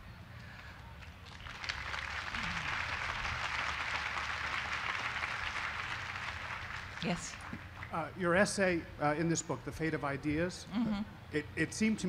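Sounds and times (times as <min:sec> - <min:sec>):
audience applauding: 0:01.2 - 0:08.0.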